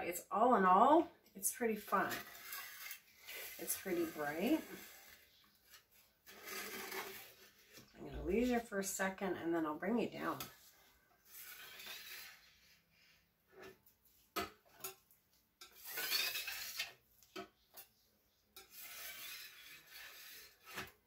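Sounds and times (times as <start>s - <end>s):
paintbrush swishing through wet paint: 1.9s - 8.6s.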